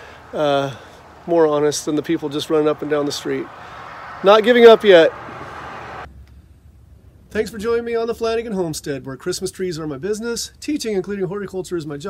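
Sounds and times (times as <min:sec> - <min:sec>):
highway traffic rush: 0:00.0 - 0:07.3.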